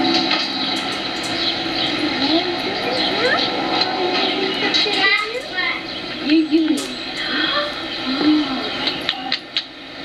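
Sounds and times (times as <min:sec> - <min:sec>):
camcorder tape hiss: 0:00.0 - 0:10.0.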